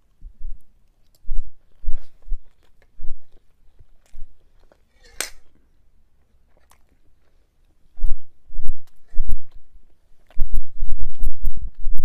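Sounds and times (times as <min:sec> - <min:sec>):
mouth chewing soft food: 0:00.0 - 0:12.0
low microphone thumps: 0:10.4 - 0:12.0.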